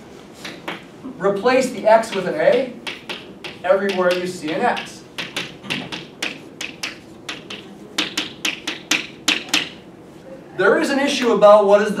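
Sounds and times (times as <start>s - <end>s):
chalk tapping on blackboard: 0.4s - 0.9s, 1.8s - 9.8s.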